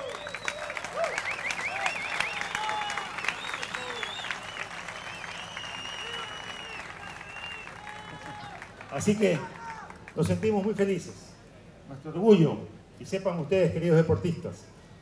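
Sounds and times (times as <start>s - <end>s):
high whistles: 0.0s - 8.2s
audience applauding: 0.0s - 10.4s.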